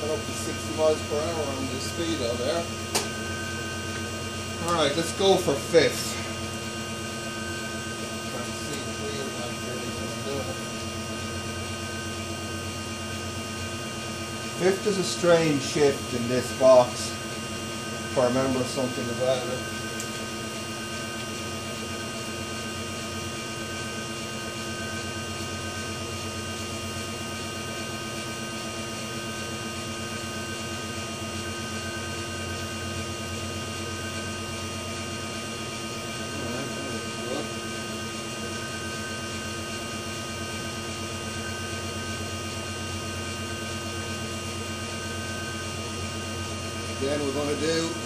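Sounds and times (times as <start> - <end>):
electric motor hum: 0.0 - 48.0.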